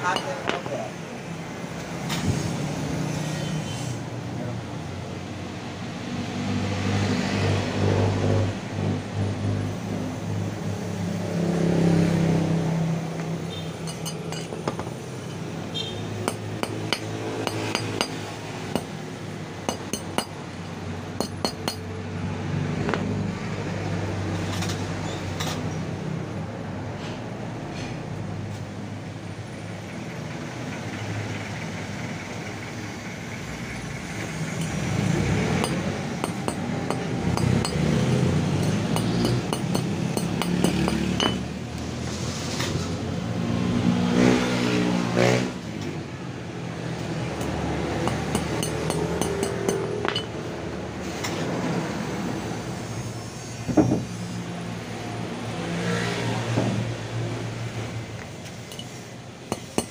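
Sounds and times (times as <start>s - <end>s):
vehicle engines passing: 0.0s - 59.9s.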